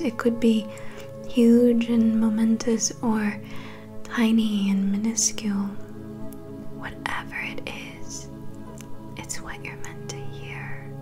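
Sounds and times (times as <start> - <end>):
ambient meditation music: 0.0 - 11.0.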